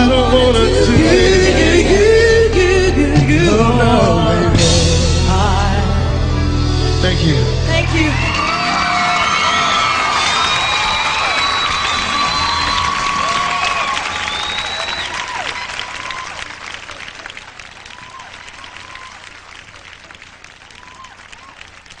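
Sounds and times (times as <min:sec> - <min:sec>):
band playing: 0:00.0 - 0:21.3
audience applauding and cheering: 0:07.8 - 0:22.0
high whistles: 0:08.1 - 0:16.4, 0:17.9 - 0:19.4.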